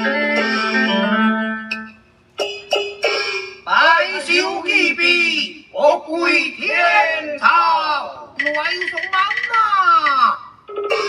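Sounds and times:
plucked string notes: 0:00.0 - 0:03.6.

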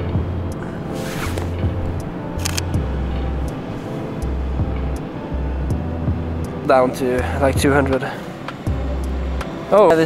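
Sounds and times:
background music with bass line: 0:00.0 - 0:10.0
sharp clicks: 0:02.4 - 0:02.8.

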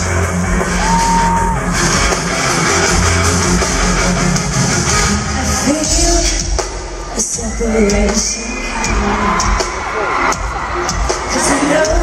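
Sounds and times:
live pop-rock band: 0:00.0 - 0:12.0.

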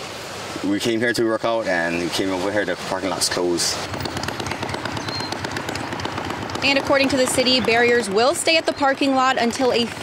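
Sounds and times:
outdoor background rush: 0:00.0 - 0:10.0.

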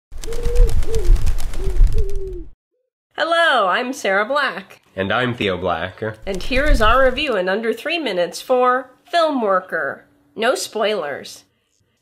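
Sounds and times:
rustling noise: 0:00.2 - 0:02.4, 0:06.2 - 0:07.4
pigeon cooing: 0:00.2 - 0:02.5.

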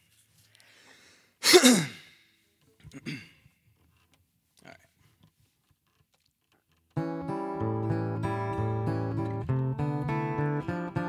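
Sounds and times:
man sighing heavily: 0:00.8 - 0:02.3.

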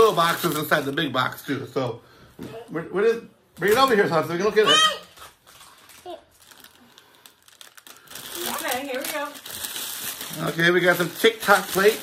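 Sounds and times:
packaging crinkling in a box: 0:00.0 - 0:01.0, 0:05.1 - 0:12.0.

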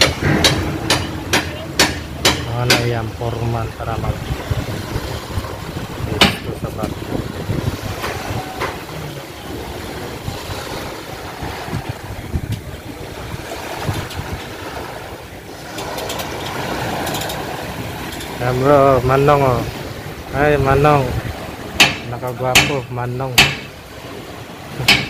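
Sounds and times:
sharp knock: 0:00.0 - 0:02.9
small waves washing on concrete: 0:00.0 - 0:25.0
wind rumble on microphone: 0:02.8 - 0:21.8.

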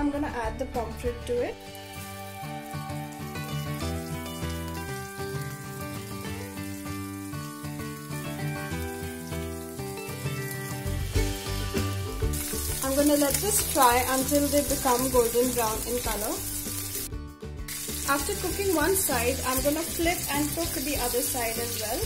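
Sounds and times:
background music: 0:00.0 - 0:22.0
fish sizzling in hot oil: 0:01.6 - 0:17.1, 0:17.7 - 0:22.0.

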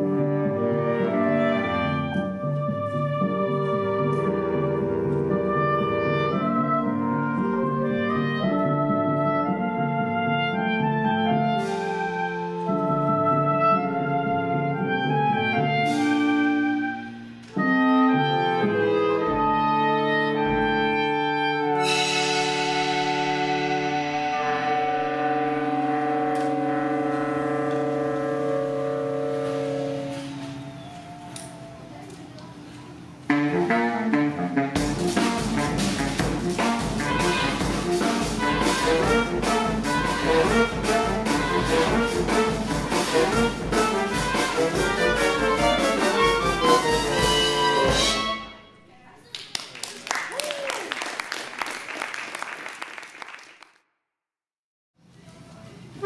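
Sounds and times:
saxophone quartet playing chords: 0:00.0 - 0:48.8
drum set: 0:11.2 - 0:12.8, 0:15.6 - 0:17.7, 0:19.2 - 0:31.7, 0:33.3 - 0:48.4.

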